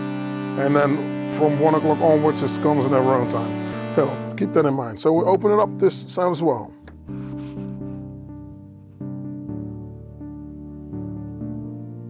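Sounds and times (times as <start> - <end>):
electronic synthesizer music: 0.0 - 12.0.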